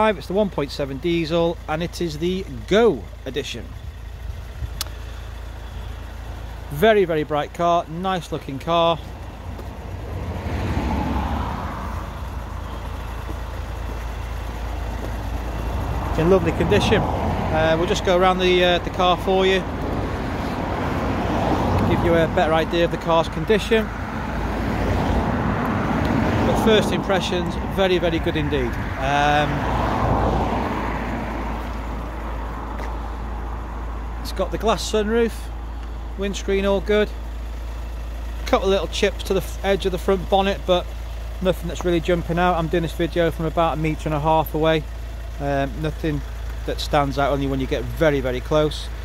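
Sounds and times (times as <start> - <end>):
road traffic rush: 0.0 - 49.0
vehicle engine idling: 0.0 - 49.0.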